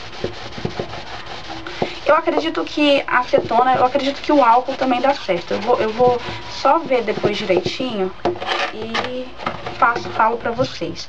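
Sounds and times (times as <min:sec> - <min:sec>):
cloth rubbing on cardboard: 0:00.0 - 0:08.0.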